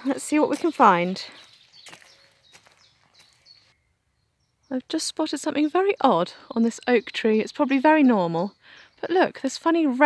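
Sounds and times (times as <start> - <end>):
boot footsteps on woodland path: 0.0 - 3.8
faint high bird chirps: 0.4 - 9.7.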